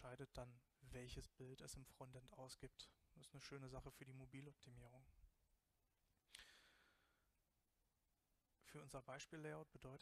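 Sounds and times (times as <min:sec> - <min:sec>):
man breathing into microphone: 0:06.3 - 0:07.3.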